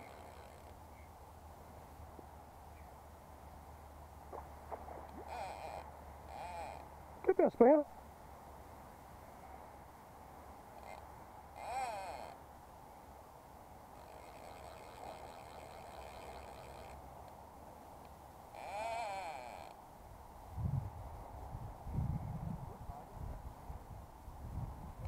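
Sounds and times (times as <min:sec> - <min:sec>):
animal bleats: 0:00.0 - 0:00.7, 0:05.2 - 0:06.9, 0:11.6 - 0:12.4, 0:14.0 - 0:17.0, 0:18.5 - 0:19.8.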